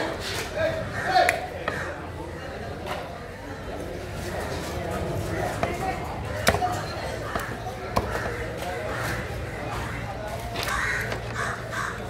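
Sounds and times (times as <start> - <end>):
crow cawing: 7.2 - 12.0.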